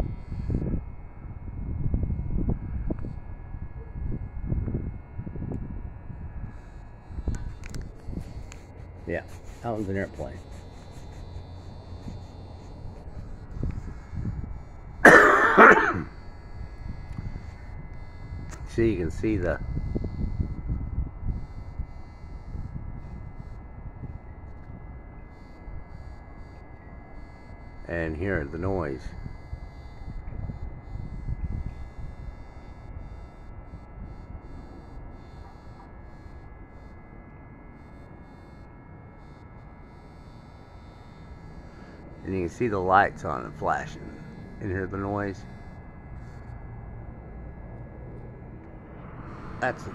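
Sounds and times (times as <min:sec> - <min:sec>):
faint low background hum: 0:00.0 - 0:49.9
person coughing: 0:15.0 - 0:16.1
distant airplane rumble: 0:40.1 - 0:49.9.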